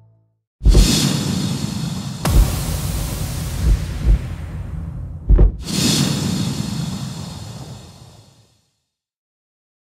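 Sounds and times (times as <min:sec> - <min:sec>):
hissing burst: 0:00.7 - 0:08.5
low rumble: 0:02.2 - 0:07.8.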